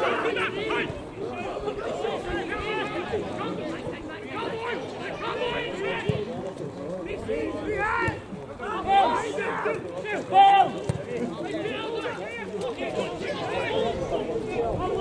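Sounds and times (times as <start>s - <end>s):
men talking and calling out: 0.0s - 15.0s.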